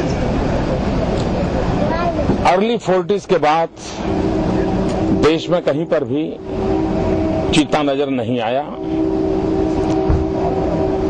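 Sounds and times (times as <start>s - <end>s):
loud mechanical hum: 0.0s - 11.0s.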